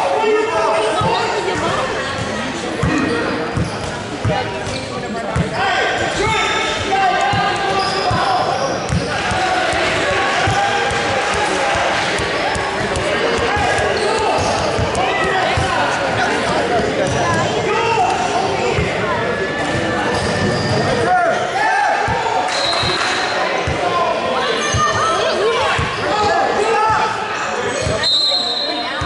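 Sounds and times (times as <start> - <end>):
voices calling out echoing: 0.0 - 29.0.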